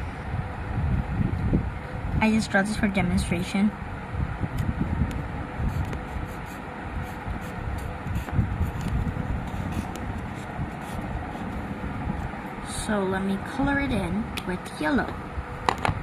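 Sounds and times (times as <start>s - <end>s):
low rumble: 0.0s - 16.0s
marker scratching on paper: 5.6s - 11.6s.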